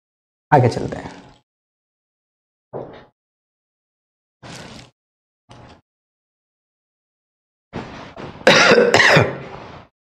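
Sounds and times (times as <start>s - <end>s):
man coughing: 8.5s - 9.5s.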